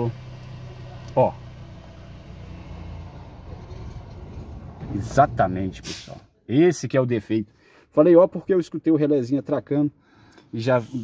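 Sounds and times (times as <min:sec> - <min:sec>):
car engine idling: 0:00.0 - 0:05.9.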